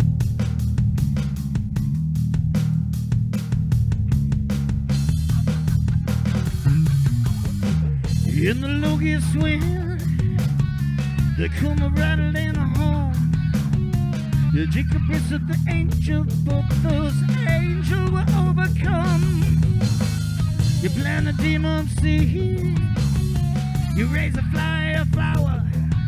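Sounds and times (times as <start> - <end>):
bass guitar: 0.0 - 26.0
electronic drum kit beat: 0.0 - 26.0
electric guitars: 3.9 - 26.0.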